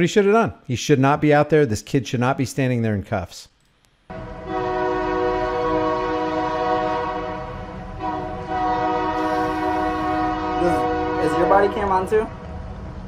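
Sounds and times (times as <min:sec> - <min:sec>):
train horn blasts: 0:04.1 - 0:12.3.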